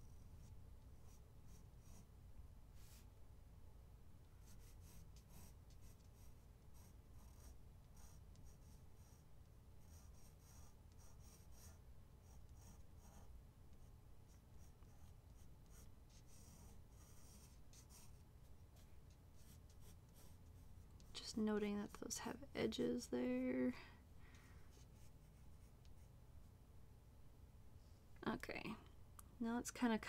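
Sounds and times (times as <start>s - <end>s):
pencil scratching on paper: 0.4s - 2.1s, 4.4s - 21.1s.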